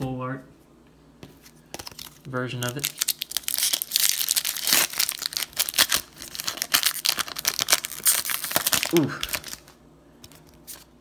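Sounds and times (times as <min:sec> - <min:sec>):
foil wrapper crinkling and tearing: 0:01.8 - 0:11.0.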